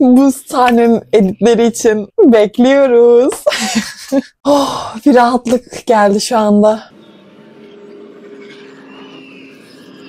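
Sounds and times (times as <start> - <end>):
low ambient drone: 6.9 - 10.0
soft wavering high tone: 6.9 - 10.0.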